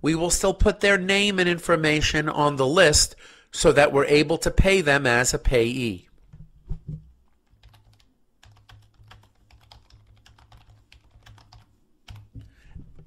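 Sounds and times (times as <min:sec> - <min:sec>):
typing on computer keyboard: 0:07.4 - 0:13.0.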